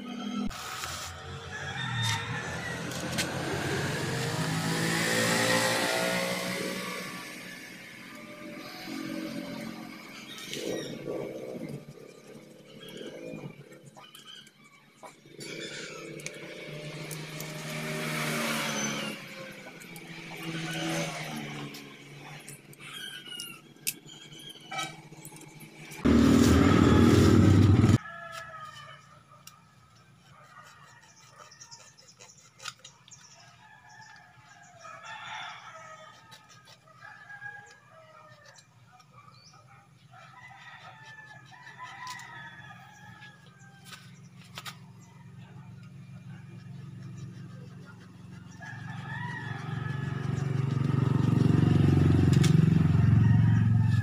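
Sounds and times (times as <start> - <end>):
vehicle engines passing by: 1.2 - 10.8, 15.2 - 28.0, 43.2 - 54.0
very loud abrupt sound: 26.0 - 28.0.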